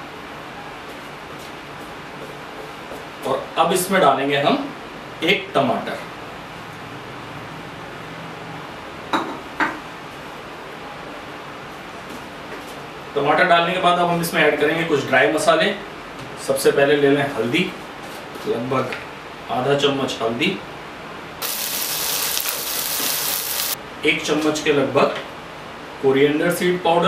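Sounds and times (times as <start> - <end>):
food sizzling in oil: 21.4 - 23.8.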